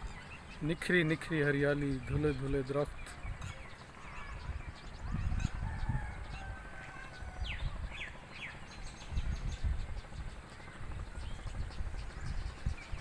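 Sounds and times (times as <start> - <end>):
birds calling: 0.0 - 13.0.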